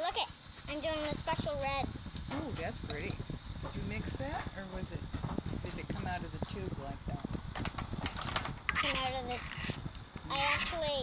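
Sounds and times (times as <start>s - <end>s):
high-pitched child's voice: 0.0s - 1.9s, 8.8s - 9.7s, 10.3s - 11.0s
low rumble: 0.4s - 8.7s.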